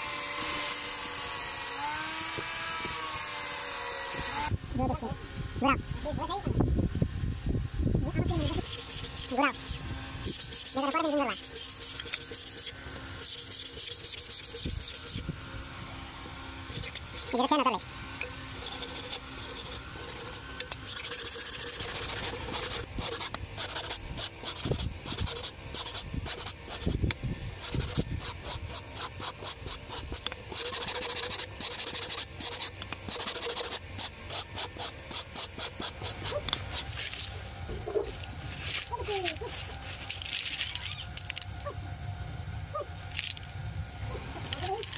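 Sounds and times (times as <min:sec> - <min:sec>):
sandpaper rubbing on bamboo: 0:08.2 - 0:15.3, 0:16.7 - 0:17.9, 0:18.5 - 0:40.8.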